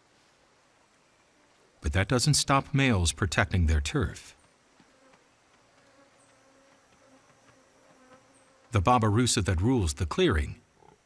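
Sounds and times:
flying insect buzzing: 0:04.8 - 0:08.8.

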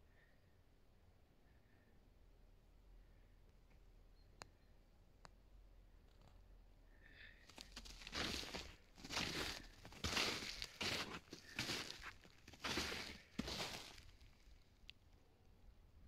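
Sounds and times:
footsteps crunching in snow: 0:07.5 - 0:14.6.

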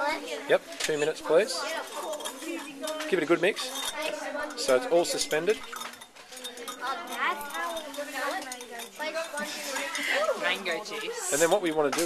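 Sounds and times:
stirring rod clinking on glass jar: 0:00.8 - 0:10.7, 0:11.4 - 0:12.0.

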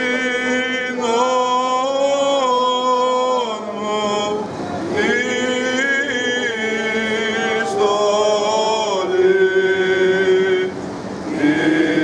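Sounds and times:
men chanting a long note: 0:00.0 - 0:12.0.

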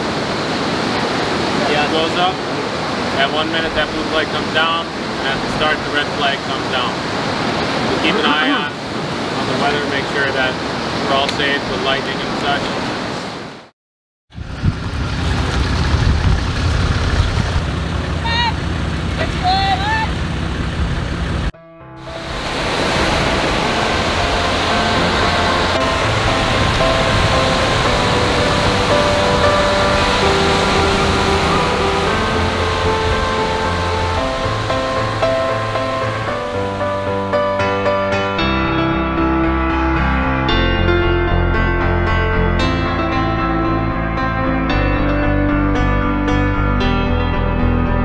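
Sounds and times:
surf on a beach: 0:00.0 - 0:13.7, 0:14.4 - 0:38.4
wind: 0:00.0 - 0:13.7, 0:14.3 - 0:38.1
soft piano music: 0:21.6 - 0:48.0.

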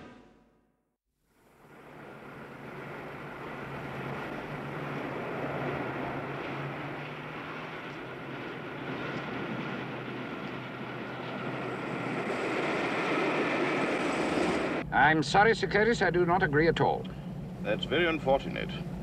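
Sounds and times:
street traffic rumble: 0:01.4 - 0:19.0
car driving off: 0:01.6 - 0:14.8.

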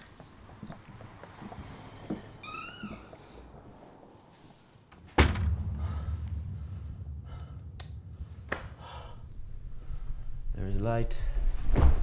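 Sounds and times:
loud thud: 0:05.1 - 0:08.8
low steady rumble: 0:05.2 - 0:11.3.

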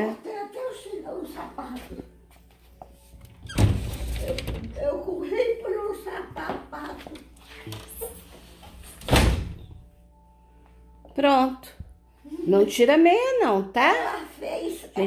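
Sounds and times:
door thud: 0:09.0 - 0:09.6.

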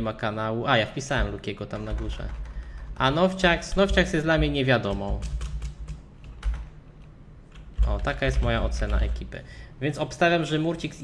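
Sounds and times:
computer keyboard typing: 0:01.7 - 0:06.8, 0:07.5 - 0:09.3.

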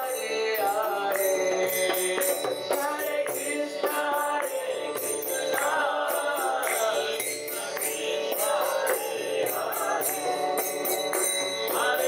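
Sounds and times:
jingling metal percussion: 0:00.0 - 0:12.0.

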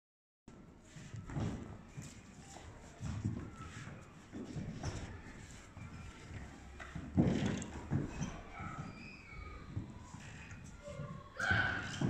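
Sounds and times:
footsteps on wooden floor: 0:00.8 - 0:12.0.

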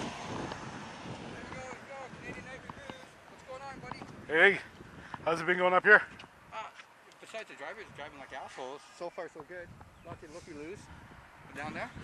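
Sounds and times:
truck driving past: 0:00.0 - 0:02.1.

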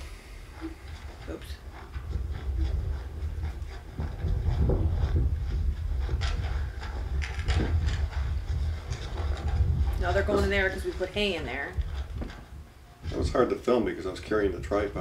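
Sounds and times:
footsteps: 0:00.0 - 0:15.0
wind rumble on microphone: 0:00.0 - 0:15.0.

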